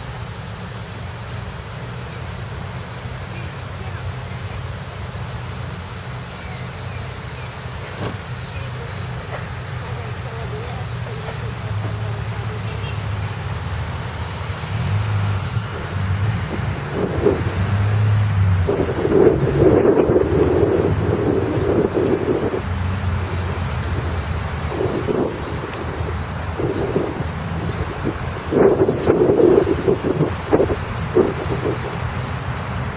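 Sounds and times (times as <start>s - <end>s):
wind buffeting microphone: 0.9s - 32.9s
outdoor rushing background: 13.4s - 32.9s.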